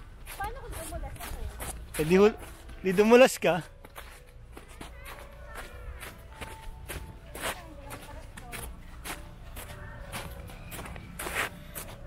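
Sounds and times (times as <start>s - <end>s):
footsteps crunching on snow: 0.0s - 12.0s.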